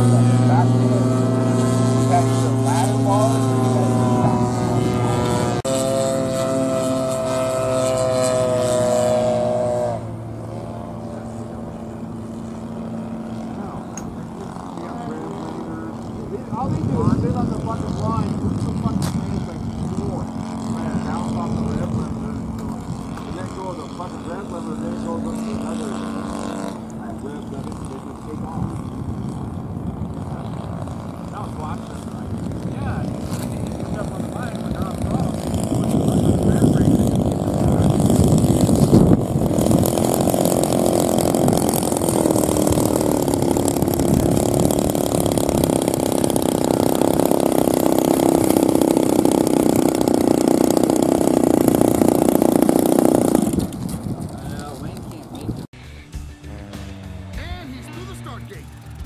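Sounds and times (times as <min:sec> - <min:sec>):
model airplane engine droning: 0:00.0 - 0:55.7.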